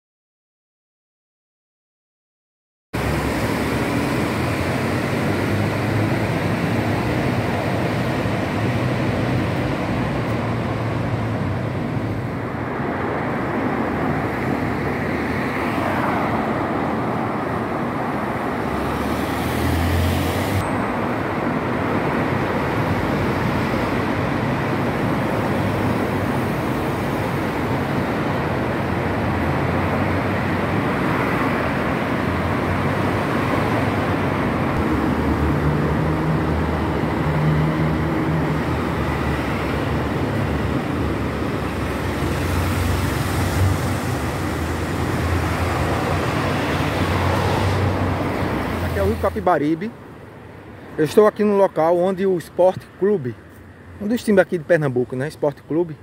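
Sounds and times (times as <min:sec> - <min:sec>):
cars driving past: 0:03.0 - 0:56.0
rush of traffic noise: 0:03.0 - 0:56.0.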